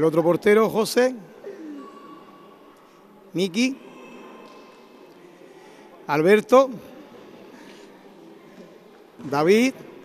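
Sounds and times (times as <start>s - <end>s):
indoor sports hall background noise: 0.0s - 10.0s.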